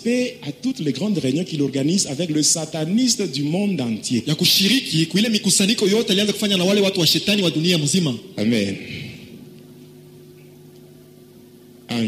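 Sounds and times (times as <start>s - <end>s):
man speaking: 0.0s - 9.2s
faint low hum: 0.0s - 12.0s.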